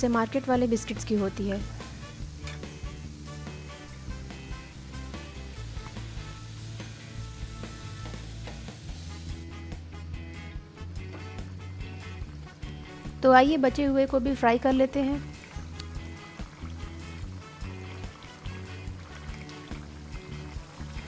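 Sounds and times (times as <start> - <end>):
hot oil sizzling: 0.0 - 9.6, 10.8 - 21.0
background music with low notes: 0.0 - 21.0.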